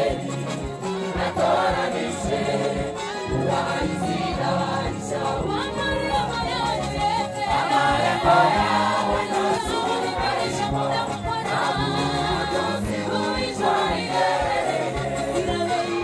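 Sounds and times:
gospel choir singing: 0:00.0 - 0:16.0.

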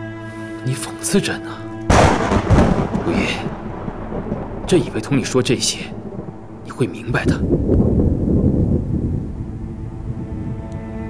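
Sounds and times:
low bowed strings: 0:00.0 - 0:11.0
deep roll of thunder: 0:01.7 - 0:10.6.

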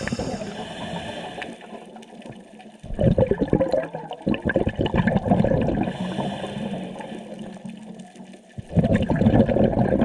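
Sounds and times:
underwater bubbles gurgling: 0:00.0 - 0:10.0.

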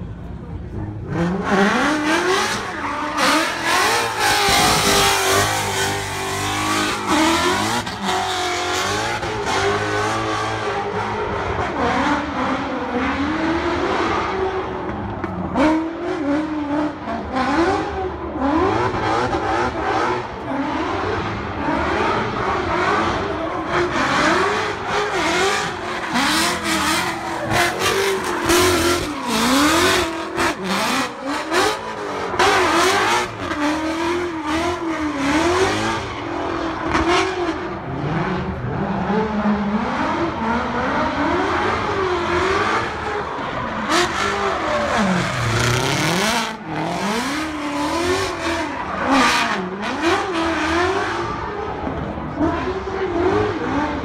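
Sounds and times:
car engine revving: 0:00.7 - 0:54.0.

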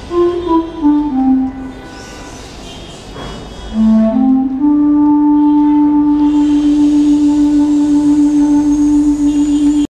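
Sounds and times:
flute holding low note: 0:00.0 - 0:02.2, 0:03.7 - 0:09.9.

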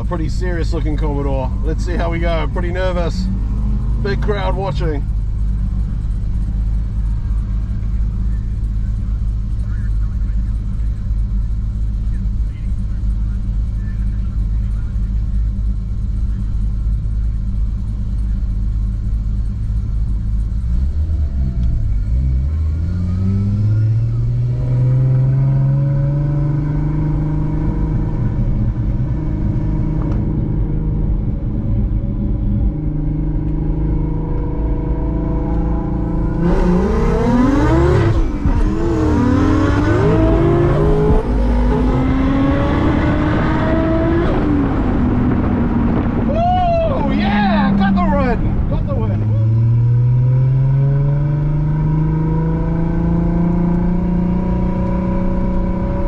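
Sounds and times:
race car engine revving: 0:00.0 - 0:56.0.

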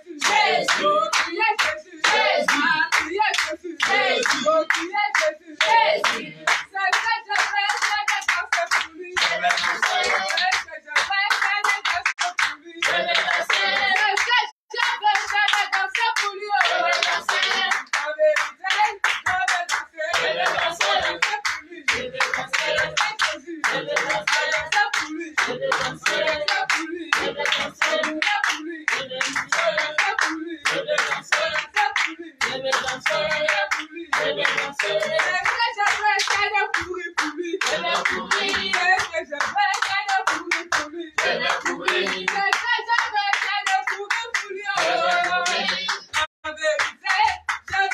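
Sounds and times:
congregation singing: 0:00.0 - 0:10.8, 0:11.5 - 0:46.3
congregation clapping: 0:00.0 - 0:47.9.

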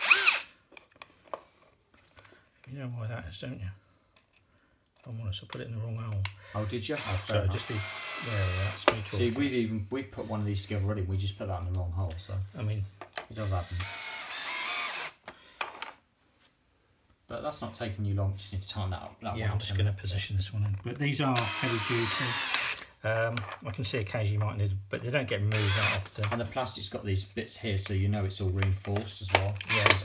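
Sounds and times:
cordless drill motor whining: 0:00.0 - 0:00.5, 0:06.5 - 0:09.4, 0:13.4 - 0:15.6, 0:21.4 - 0:22.9, 0:25.5 - 0:26.1.

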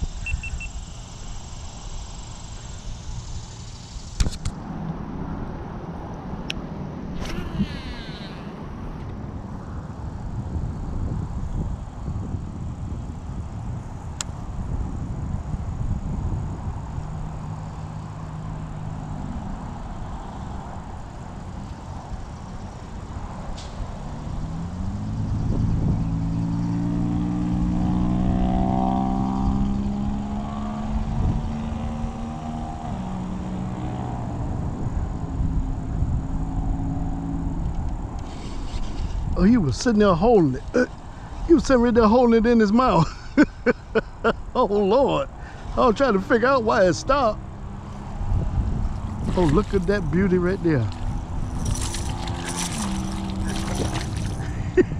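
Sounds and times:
wind noise on microphone: 0:00.0 - 0:05.5, 0:06.9 - 0:54.9
motor engine humming: 0:44.6 - 0:54.9.

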